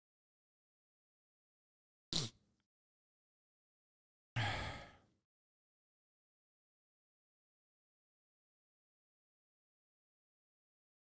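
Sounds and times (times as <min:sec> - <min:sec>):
man sighing: 0:04.4 - 0:05.0.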